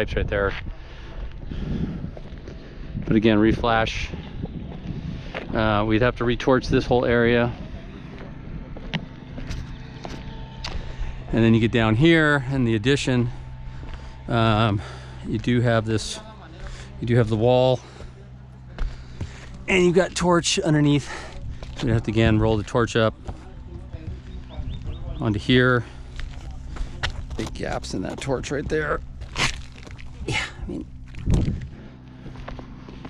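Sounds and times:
footsteps on roof: 17.8 - 19.7
boots stepping on shingle roof: 17.8 - 20.1, 21.1 - 25.1.

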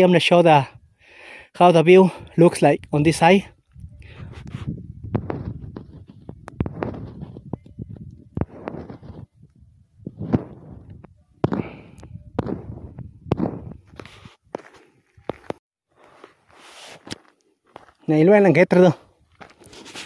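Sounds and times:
footsteps on dirt road: 4.2 - 9.4, 10.1 - 20.0.

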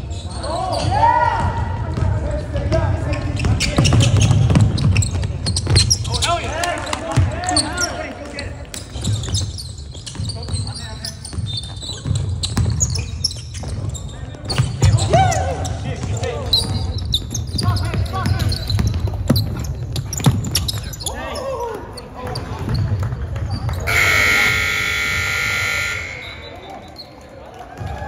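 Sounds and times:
basketball bouncing on wooden court: 3.4 - 6.1, 11.3 - 15.0
players' voices: 20.7 - 27.9
scoreboard buzzer: 23.9 - 26.6.

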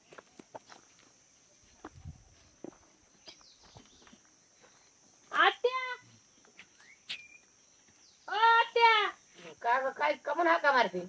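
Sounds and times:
footsteps on dirt: 0.0 - 5.6, 6.2 - 8.2.

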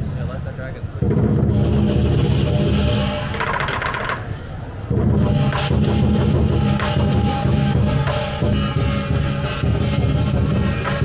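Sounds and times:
large drum beating steadily: 0.9 - 3.5, 4.8 - 11.0
clashing metal percussion: 1.0 - 11.0.

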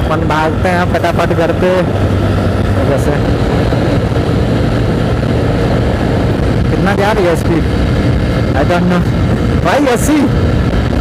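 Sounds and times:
motorcycle engine running: 0.0 - 11.0
road noise: 0.0 - 11.0
wind noise: 0.0 - 11.0.

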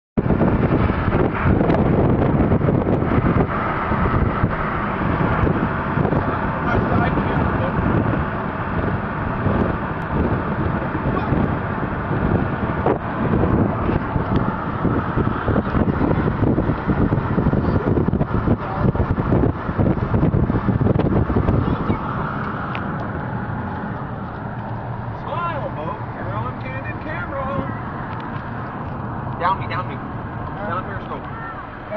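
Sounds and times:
car road noise: 0.2 - 31.9
wind buffeting microphone: 0.2 - 31.9.

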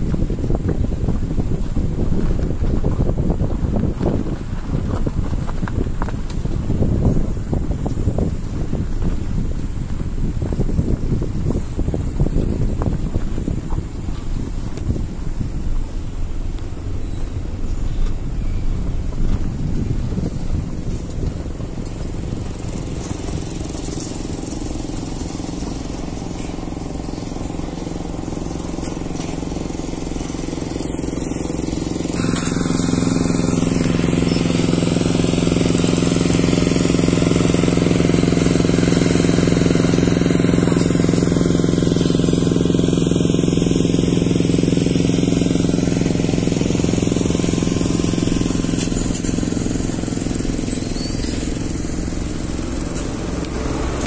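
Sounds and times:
engine running with low hum: 0.0 - 54.0.

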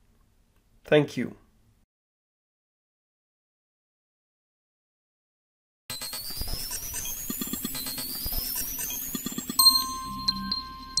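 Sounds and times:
rising synth sweep: 5.9 - 11.0
bright ringing chime: 6.2 - 11.0.

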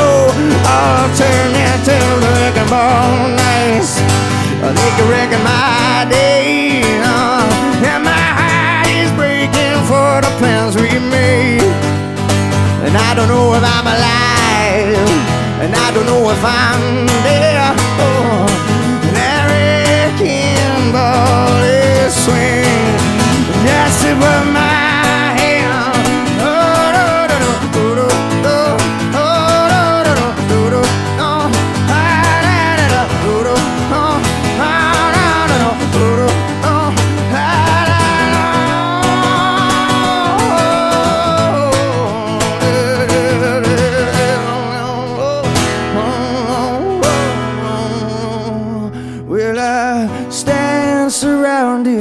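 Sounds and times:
acoustic guitar strumming: 0.0 - 52.0
man singing: 0.0 - 52.0.

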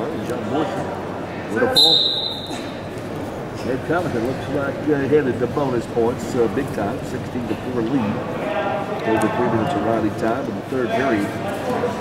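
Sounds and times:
referee's whistle blast: 1.7 - 2.7.

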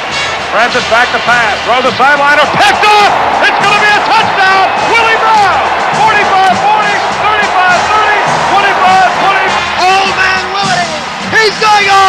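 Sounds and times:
crowd noise: 0.0 - 12.0
loud music: 0.0 - 12.0
radio announcer shouting: 0.6 - 12.0.

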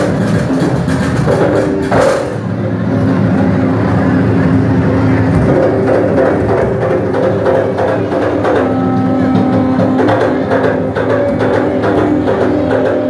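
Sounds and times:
hand drums: 0.0 - 2.5, 5.2 - 13.0.

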